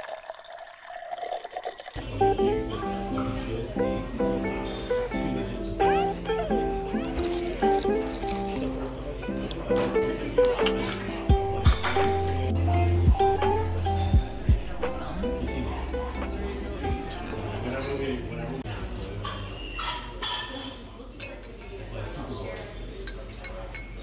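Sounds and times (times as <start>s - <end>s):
mellow plucked string music: 2.0s - 18.2s
deep bass line: 11.3s - 15.4s.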